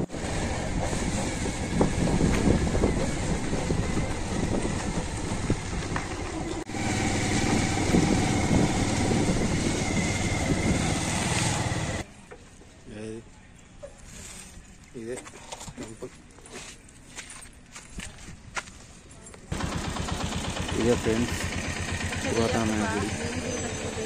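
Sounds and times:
scooter engine running: 0.0 - 12.0, 19.5 - 24.0
road and wind noise: 0.0 - 14.8, 15.5 - 24.0.

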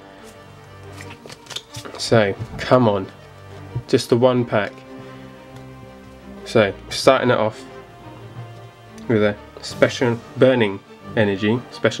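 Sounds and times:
soft background music: 0.0 - 12.0
trading cards clicking: 0.3 - 2.6.

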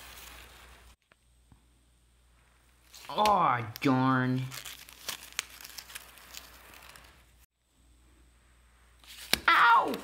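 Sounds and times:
faint room hiss: 0.0 - 9.5.

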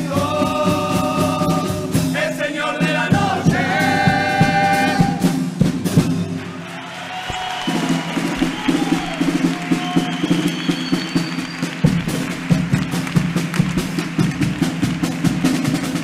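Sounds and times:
steady drum beat: 0.0 - 16.0.

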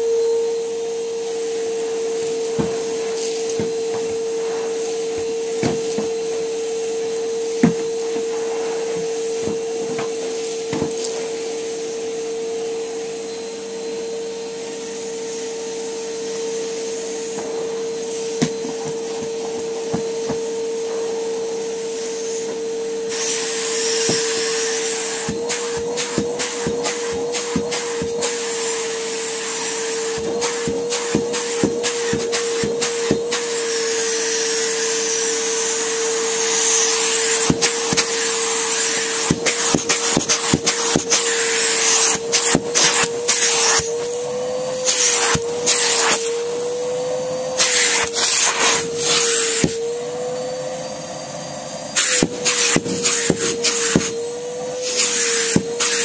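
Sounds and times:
vacuum cleaner motor hum: 0.0 - 56.0
rushing hiss of air: 1.4 - 5.6, 6.2 - 12.0
vacuum hose knocking on carpet: 2.3 - 6.4, 7.5 - 11.2, 17.3 - 21.1, 23.8 - 28.4, 29.6 - 33.4, 36.6 - 38.2, 39.1 - 43.9, 49.5 - 49.9, 52.0 - 54.2, 55.0 - 56.0.

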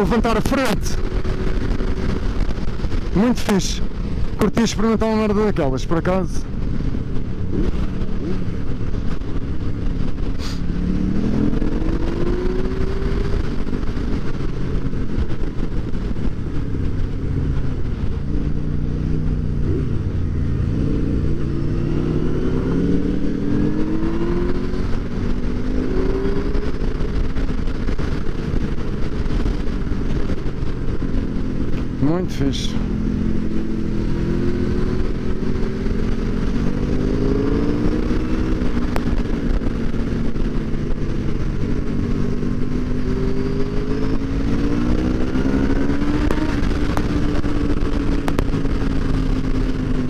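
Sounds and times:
motorcycle engine revving: 0.0 - 50.0.

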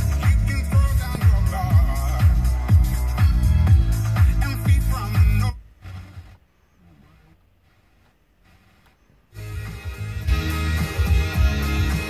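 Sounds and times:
music with guitar: 0.0 - 5.5, 9.4 - 12.0
music from car radio: 0.0 - 12.0.

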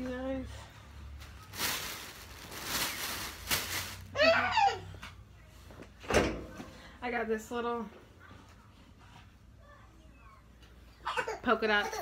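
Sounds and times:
clothes rustling: 1.2 - 4.2.

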